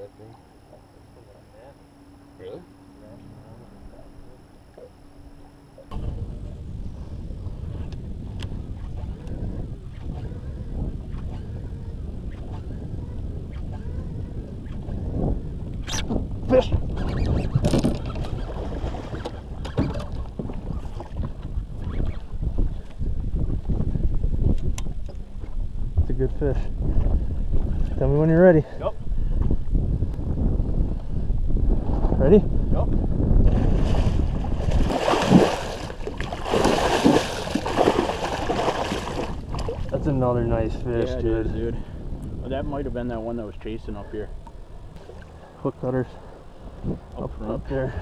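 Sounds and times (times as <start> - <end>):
wind rumbling on microphone: 1.7 - 48.0.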